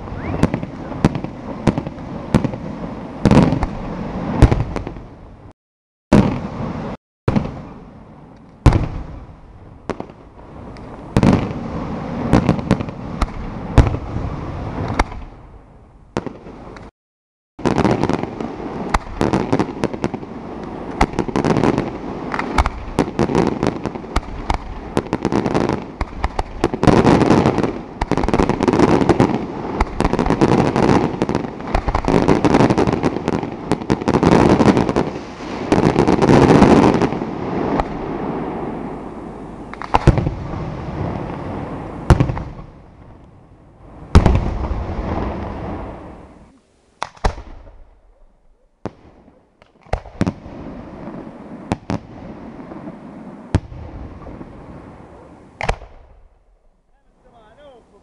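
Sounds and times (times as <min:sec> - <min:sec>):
fireworks bangs: 0:00.0 - 0:16.9, 0:17.6 - 0:58.0
fireworks crackling barrage: 0:00.0 - 0:16.9, 0:17.6 - 0:58.0.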